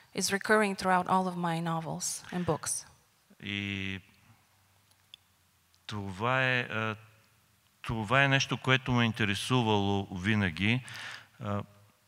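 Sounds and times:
man speaking into a microphone: 3.3s - 4.2s, 5.9s - 7.2s, 7.8s - 11.8s.

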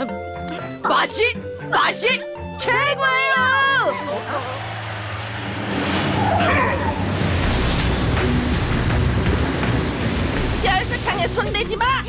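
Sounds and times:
rushing noise: 4.5s - 11.5s.

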